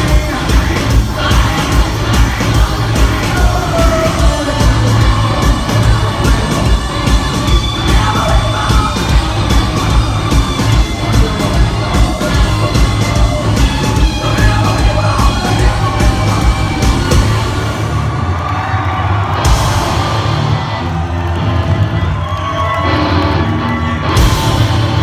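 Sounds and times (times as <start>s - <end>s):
faint crowd: 0.0s - 25.0s
live metal band playing: 0.0s - 25.0s.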